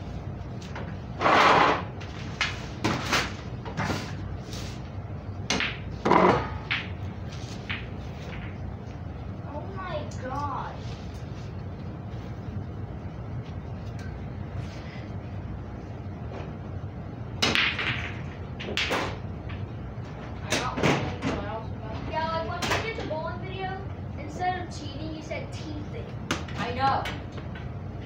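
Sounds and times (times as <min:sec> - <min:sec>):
low steady rumble: 0:00.0 - 0:28.0.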